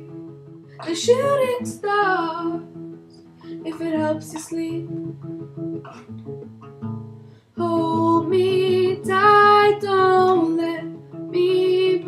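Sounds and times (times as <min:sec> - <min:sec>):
classical guitar plucked: 0:00.0 - 0:12.0
person singing: 0:00.8 - 0:02.6, 0:07.6 - 0:12.0.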